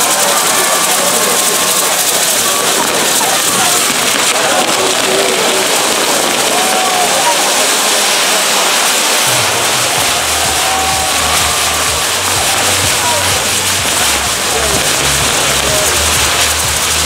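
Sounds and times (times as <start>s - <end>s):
fireworks spraying sparks hissing: 0.0s - 17.0s.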